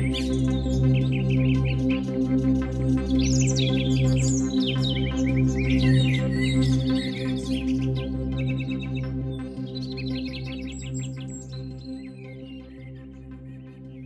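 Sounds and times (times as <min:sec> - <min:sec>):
ambient synthesizer music: 0:00.0 - 0:14.0.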